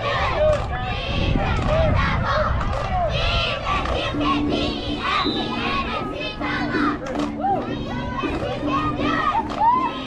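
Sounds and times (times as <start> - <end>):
children shouting: 0.0 - 10.0.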